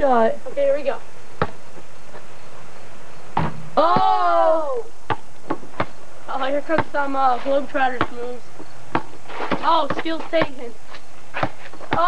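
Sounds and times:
steady hiss: 0:00.0 - 0:03.8
basketball bouncing: 0:01.4 - 0:01.6, 0:03.4 - 0:04.1, 0:05.1 - 0:07.2, 0:07.8 - 0:10.7, 0:11.3 - 0:12.0.

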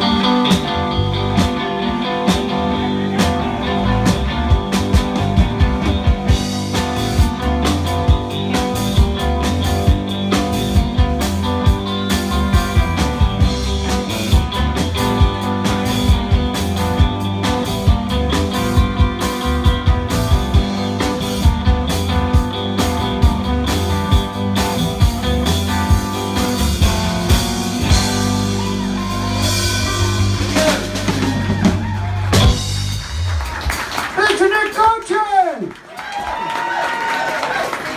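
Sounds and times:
bass guitar: 0:00.0 - 0:34.8
electric guitars: 0:00.0 - 0:34.8
drum kit beat: 0:00.0 - 0:35.0.

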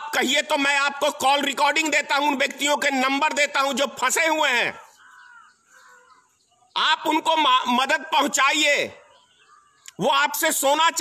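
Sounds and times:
man speaking: 0:00.0 - 0:05.0, 0:06.7 - 0:09.1, 0:09.9 - 0:11.0
faint bird calls: 0:04.2 - 0:10.1.

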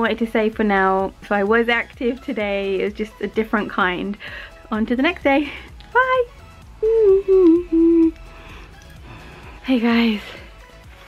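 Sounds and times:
faint background music: 0:00.0 - 0:11.0
woman humming: 0:06.8 - 0:08.2.

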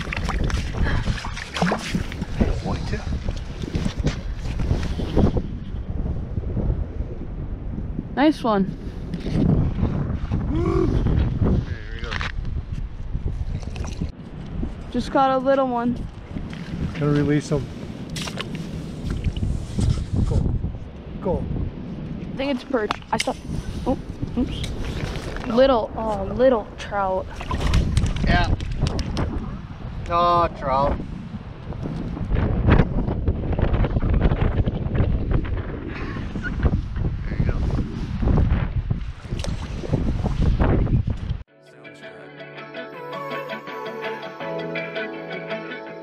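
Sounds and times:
wind buffeting microphone: 0:00.0 - 0:41.5.

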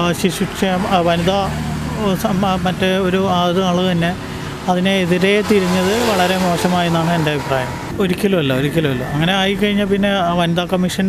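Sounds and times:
low rumble of road traffic: 0:00.0 - 0:11.0
man talking into microphone: 0:00.0 - 0:11.0.

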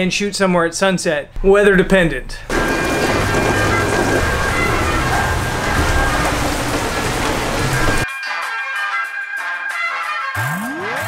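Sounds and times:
heavy rain pouring: 0:02.5 - 0:08.0
background music: 0:02.5 - 0:11.0.

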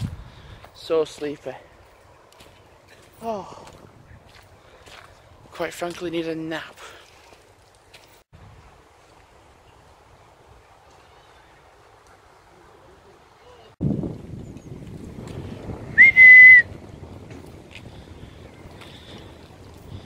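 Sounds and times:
wind rumble on microphone: 0:00.0 - 0:00.7, 0:03.4 - 0:05.6, 0:13.8 - 0:20.0
loud whistle: 0:16.0 - 0:16.7.

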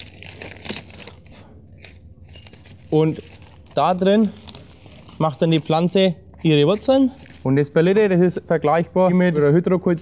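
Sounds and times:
plastic sleeve crinkling: 0:00.0 - 0:07.7.

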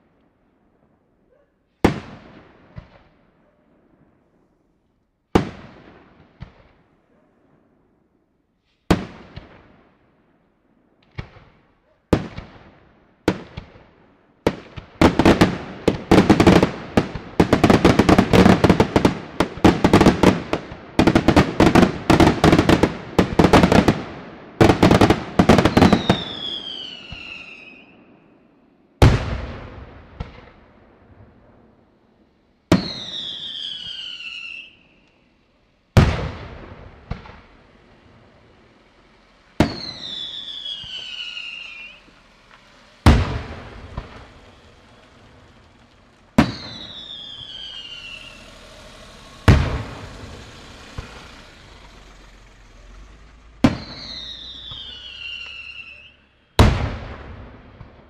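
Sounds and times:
fireworks bangs: 0:00.0 - 0:58.0
falling firework whistle: 0:15.0 - 0:30.6, 0:32.7 - 0:57.4.

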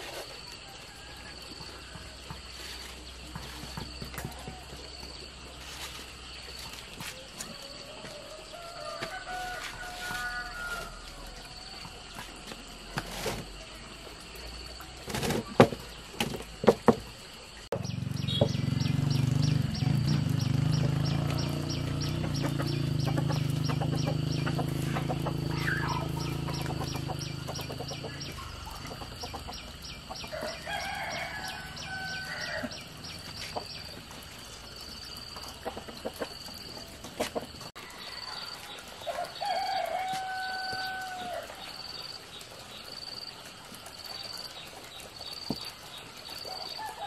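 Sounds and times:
high pulsing insect chirp: 0:00.0 - 0:44.6
rooster crowing: 0:00.6 - 0:02.3, 0:07.5 - 0:12.2, 0:21.3 - 0:29.4, 0:30.1 - 0:33.0, 0:37.8 - 0:41.6.

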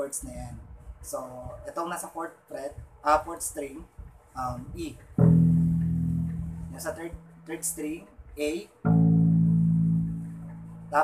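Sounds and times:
low bass guitar note: 0:05.2 - 0:07.9, 0:08.8 - 0:11.0.

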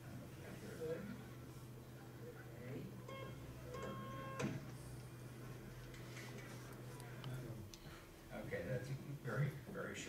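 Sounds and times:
morse code beeps: 0:03.1 - 0:04.4.

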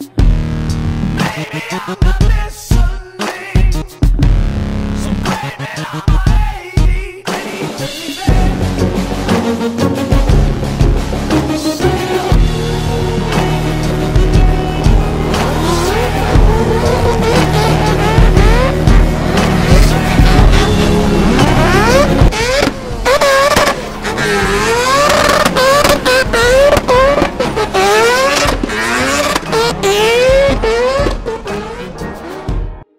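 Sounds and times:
music: 0:00.0 - 0:32.9
racing car engine accelerating: 0:08.8 - 0:32.8.

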